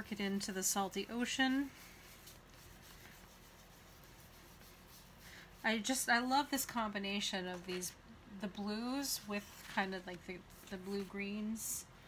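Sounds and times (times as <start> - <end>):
foam tool rubbing on paper: 0.0 - 5.9.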